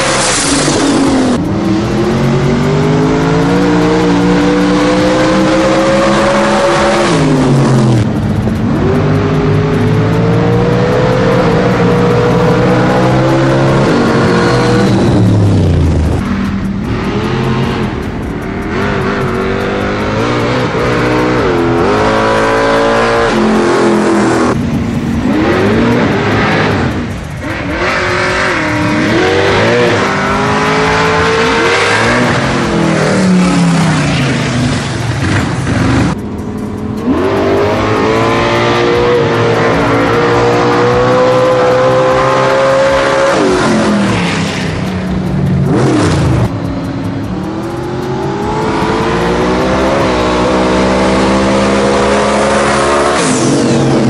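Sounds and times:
race car engines at full throttle: 0.0 - 54.0.

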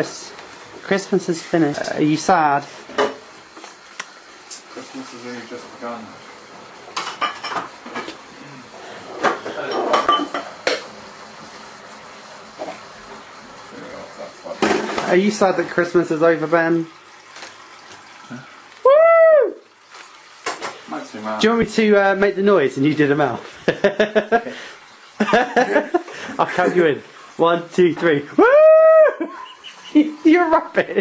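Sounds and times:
person whooping: 18.8 - 19.6, 28.4 - 29.6.

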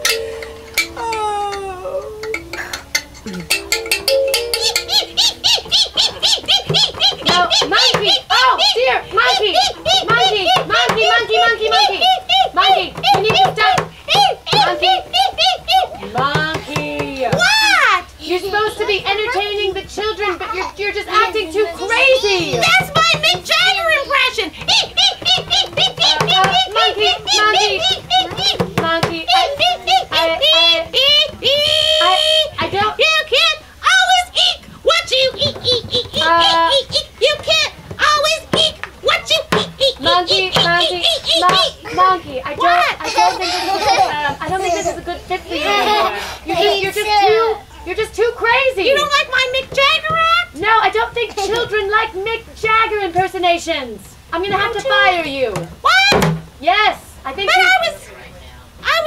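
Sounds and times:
person imitating monkey hoots: 0.8 - 16.4, 24.6 - 32.6.

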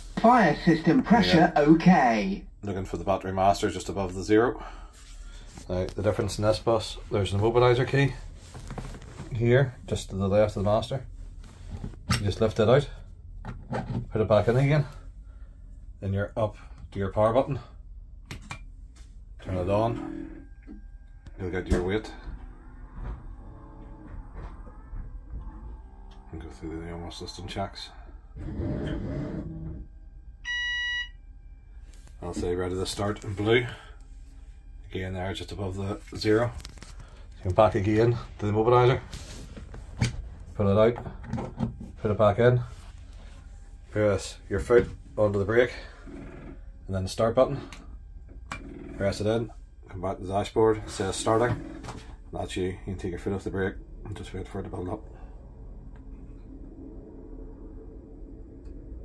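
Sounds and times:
electric bus low hum: 2.5 - 59.0
warning buzzer beep: 30.4 - 31.2.

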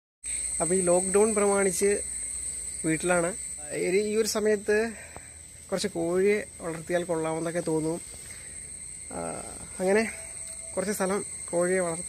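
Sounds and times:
high-pitched insect trill: 0.2 - 12.0
man speaking: 0.6 - 2.1, 2.8 - 5.1, 5.7 - 8.1, 9.1 - 12.0.

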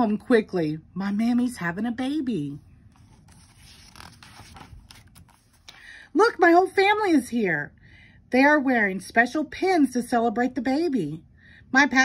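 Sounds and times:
paper page rustling: 2.9 - 5.8.

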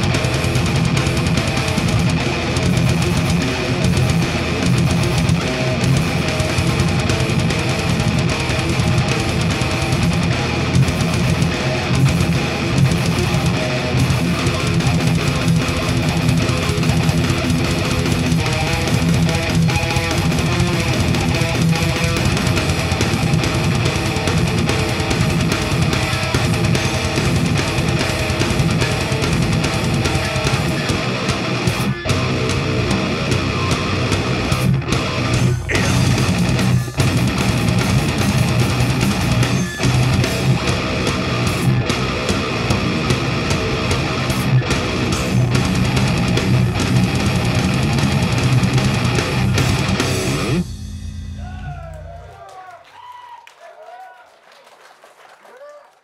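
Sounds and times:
heavy metal band playing live: 0.0 - 52.4.

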